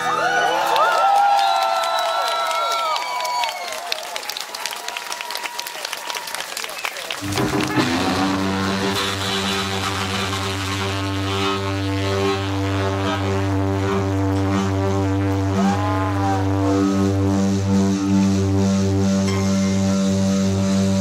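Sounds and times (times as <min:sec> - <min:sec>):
bending electric guitar notes: 0:07.2 - 0:21.0
rock band droning chord: 0:07.2 - 0:21.0.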